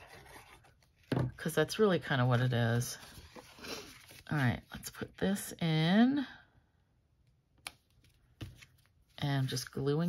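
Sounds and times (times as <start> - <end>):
paper handling: 2.3 - 4.4.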